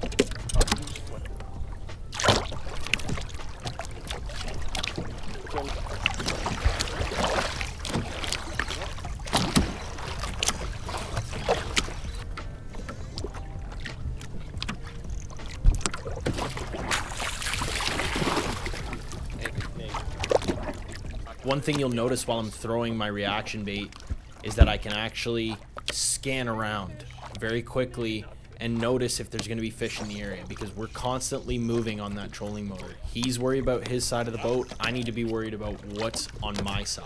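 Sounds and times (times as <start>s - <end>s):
steady low rumble: 0.0s - 37.0s
water slapping against hull: 0.0s - 37.0s.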